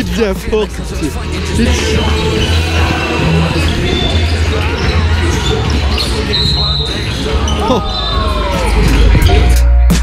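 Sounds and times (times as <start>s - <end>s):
voices: 0.0s - 9.8s
shoe squeaks: 1.6s - 8.4s.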